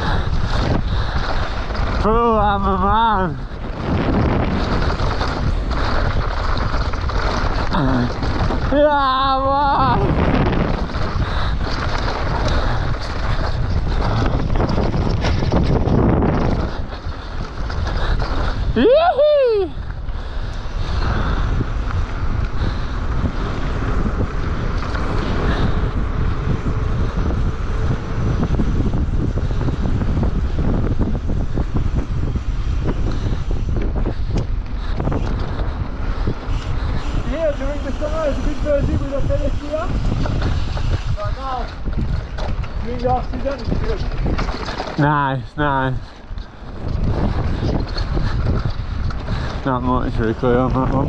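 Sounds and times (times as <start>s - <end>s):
tyres rumbling on gravel: 0.0s - 51.0s
wind buffeting microphone: 0.0s - 51.0s.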